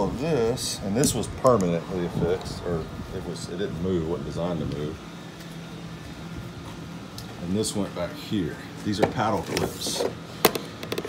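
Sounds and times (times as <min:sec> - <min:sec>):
steady mechanical hum: 0:00.0 - 0:11.0.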